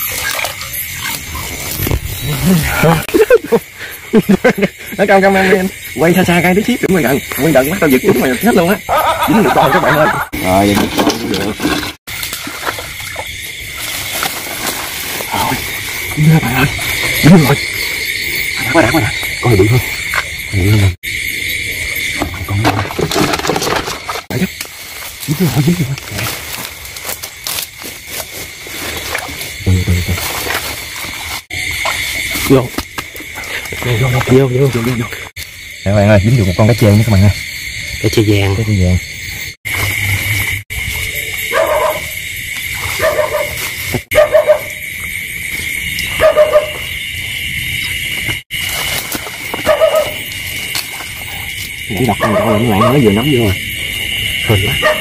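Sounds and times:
night insects trilling: 0:00.0 - 0:55.0
barking-like animal calls: 0:43.0 - 0:44.8, 0:46.2 - 0:46.9, 0:49.6 - 0:50.3, 0:52.0 - 0:53.3, 0:54.5 - 0:55.0.

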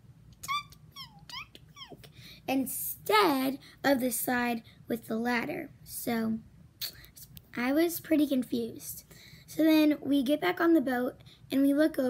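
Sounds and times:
dog whimpering: 0:00.4 - 0:02.0
people talking: 0:00.4 - 0:12.0.

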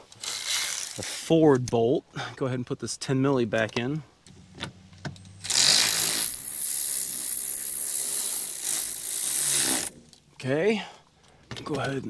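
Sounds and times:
electric ratchet motor running: 0:00.2 - 0:01.0, 0:05.4 - 0:09.9.

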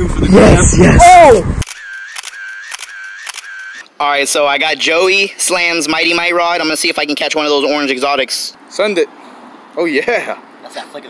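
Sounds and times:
camera shutter clicks with whirring: 0:01.6 - 0:03.9.

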